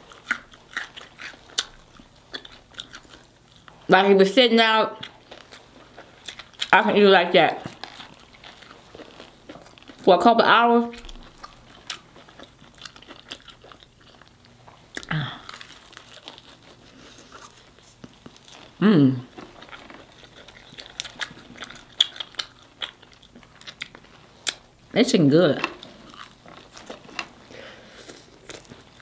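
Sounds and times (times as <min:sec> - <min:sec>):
chewing crispy fried chicken: 0:00.0 - 0:03.9, 0:04.9 - 0:24.9, 0:25.6 - 0:29.0
person humming: 0:18.8 - 0:19.2.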